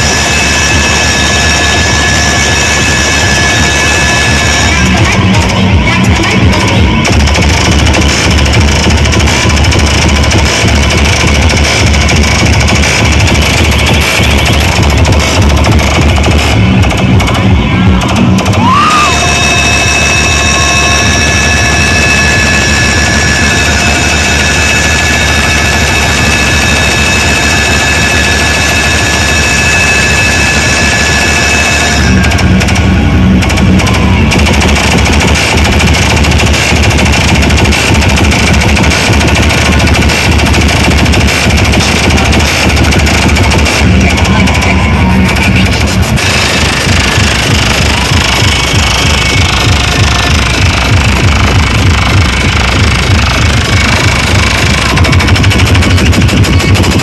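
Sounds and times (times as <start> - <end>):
heavy pounding bass beat: 0.0 - 57.0
loud dj music from loudspeakers: 0.0 - 57.0
steady high-pitched tone: 0.0 - 57.0.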